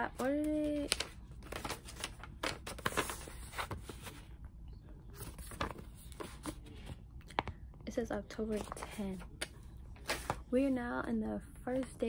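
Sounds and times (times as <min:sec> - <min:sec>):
paper rustling and crinkling: 0:00.0 - 0:04.4, 0:05.1 - 0:07.5, 0:08.5 - 0:10.4.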